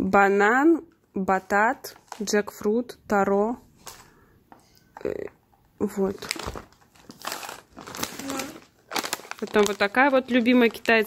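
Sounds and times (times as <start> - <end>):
plastic snack packets crinkling: 1.8 - 2.6, 5.0 - 11.0.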